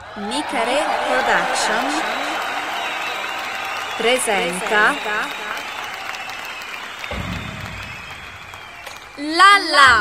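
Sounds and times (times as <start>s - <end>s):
audience applause: 0.0s - 9.3s.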